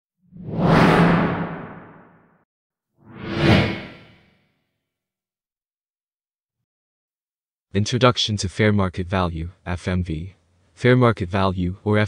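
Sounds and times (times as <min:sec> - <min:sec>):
cinematic whoosh: 0:00.3 - 0:02.2.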